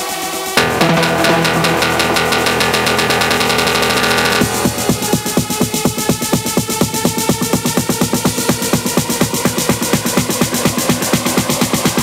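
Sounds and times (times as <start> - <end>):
pulsing synth chords: 0.6 - 6.1.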